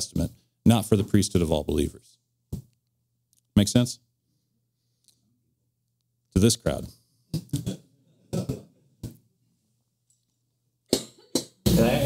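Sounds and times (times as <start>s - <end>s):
short vocal bursts: 11.7s - 12.0s.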